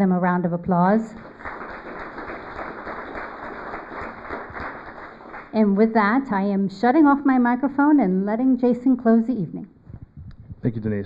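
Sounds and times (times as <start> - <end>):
audience applauding: 1.1 - 6.2.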